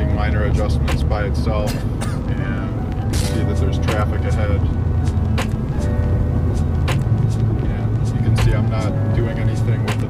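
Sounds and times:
music playing: 0:00.0 - 0:10.0
road and engine rumble in car: 0:00.0 - 0:10.0.

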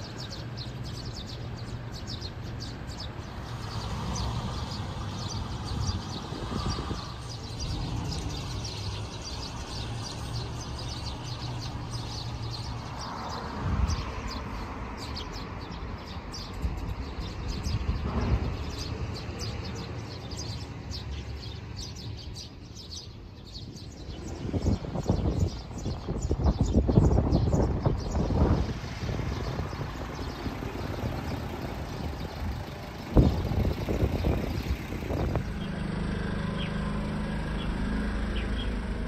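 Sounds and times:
small birds chirping: 0:00.0 - 0:39.0.

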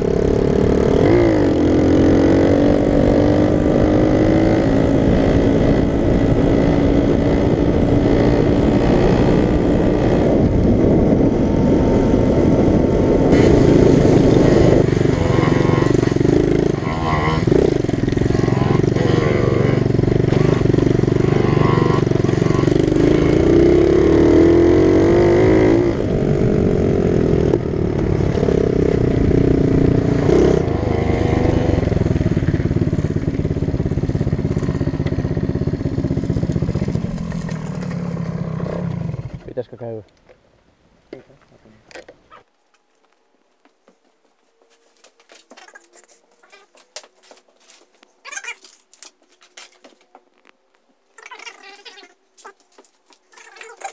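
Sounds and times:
mini motorcycle engine revving: 0:00.0 - 0:39.5, 0:48.2 - 0:50.0, 0:51.2 - 0:53.9.

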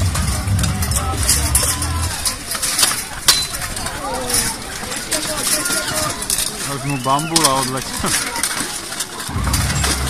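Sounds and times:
voices: 0:00.0 - 0:10.0
weapons striking armour and shields: 0:00.0 - 0:10.0.

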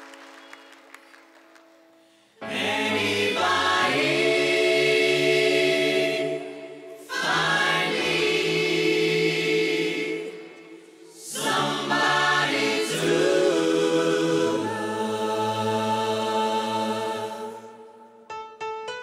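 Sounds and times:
vocal group singing in harmony: 0:02.4 - 0:18.3.

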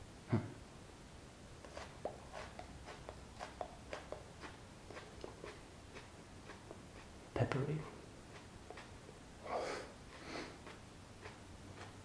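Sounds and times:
person chewing with mouth clicks: 0:01.6 - 0:07.3, 0:08.2 - 0:09.2, 0:09.8 - 0:12.0.

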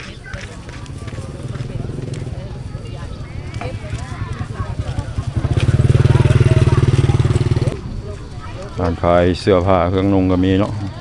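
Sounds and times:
motorcycle engine running: 0:00.0 - 0:08.7.

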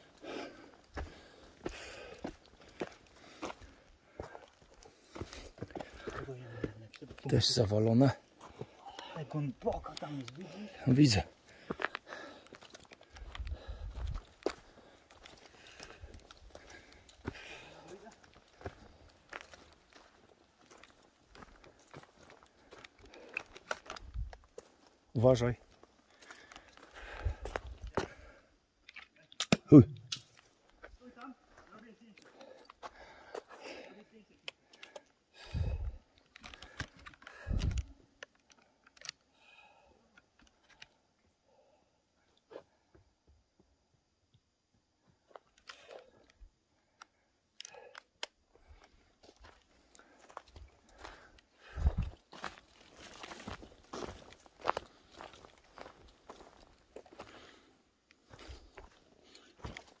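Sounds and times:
footsteps crunching on dry leaves: 0:50.3 - 0:57.5.

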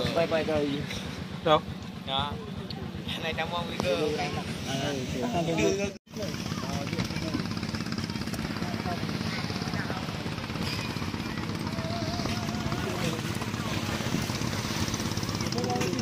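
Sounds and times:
people talking: 0:00.0 - 0:14.6, 0:15.2 - 0:16.0
low engine drone: 0:00.0 - 0:16.0.

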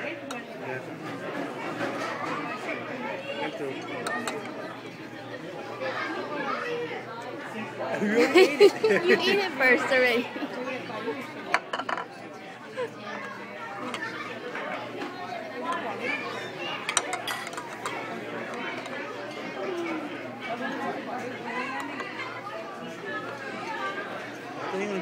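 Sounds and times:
chatter of many voices: 0:00.0 - 0:25.0.

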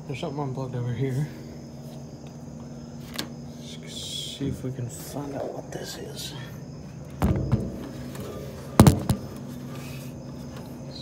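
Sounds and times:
steady low hum: 0:00.0 - 0:11.0
sharp knocks: 0:07.2 - 0:09.4.

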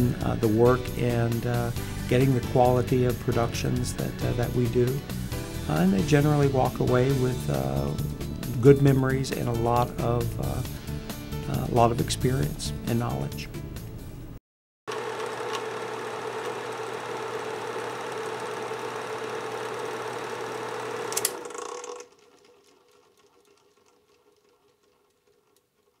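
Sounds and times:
film projector whirring: 0:14.9 - 0:25.9
projector switch click: 0:15.4 - 0:15.7.

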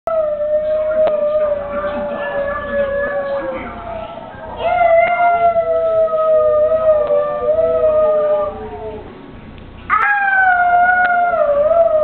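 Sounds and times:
boy howling: 0:00.1 - 0:09.1, 0:09.9 - 0:12.0
cartoon dogs howling on television: 0:00.1 - 0:09.1, 0:09.9 - 0:12.0.

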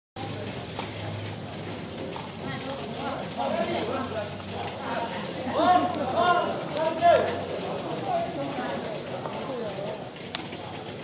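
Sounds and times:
people talking and calling out: 0:00.2 - 0:11.0.

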